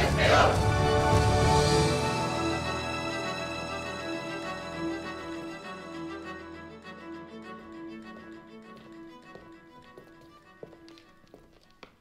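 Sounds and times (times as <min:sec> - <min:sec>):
quiet background music: 0:00.0 - 0:12.0
footsteps on stage floor: 0:08.4 - 0:12.0.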